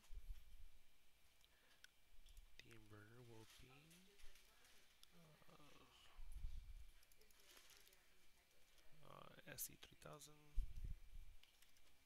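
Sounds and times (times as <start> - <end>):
computer mouse clicks: 7.0 - 8.0, 11.4 - 12.0.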